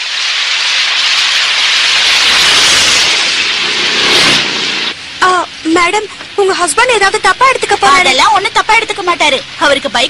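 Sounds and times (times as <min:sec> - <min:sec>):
heavy rain downpour: 0:00.0 - 0:10.0.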